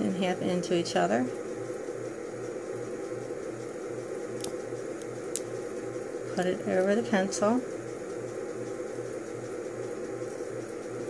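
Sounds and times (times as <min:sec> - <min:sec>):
fan hiss and pulsing hum: 0:00.0 - 0:11.0.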